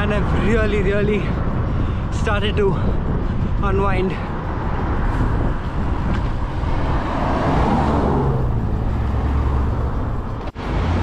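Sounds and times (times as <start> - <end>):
vehicle passing: 0.0 - 11.0
wind and road noise: 0.0 - 11.0.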